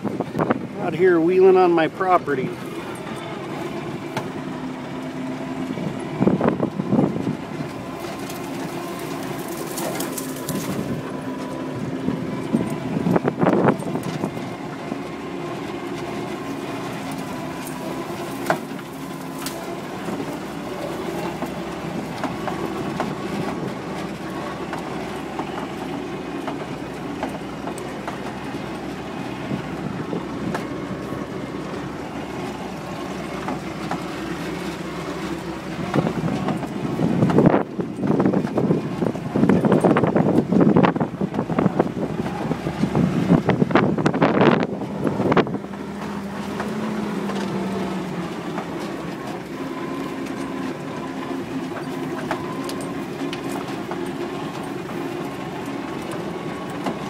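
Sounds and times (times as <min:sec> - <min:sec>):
truck engine running under load: 0:00.0 - 0:57.0
truck body rattling: 0:05.7 - 0:57.0.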